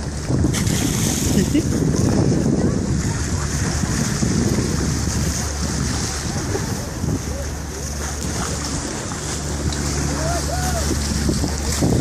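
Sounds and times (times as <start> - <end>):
boat engine hum: 0.0 - 12.0
water rushing past hull: 0.0 - 12.0
wind buffeting microphone: 0.0 - 12.0
faint voices: 2.0 - 11.8.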